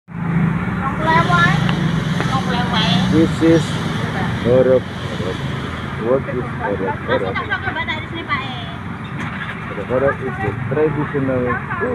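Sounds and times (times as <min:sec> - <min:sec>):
voices talking: 0:00.8 - 0:11.9.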